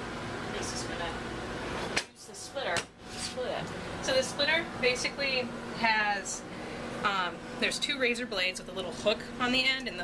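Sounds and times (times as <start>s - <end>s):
woman's voice: 0.5s - 1.3s, 2.0s - 10.0s.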